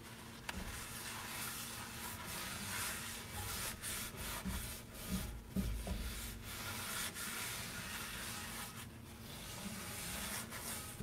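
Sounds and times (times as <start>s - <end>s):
paper towel wiping a skillet: 0.0s - 11.0s.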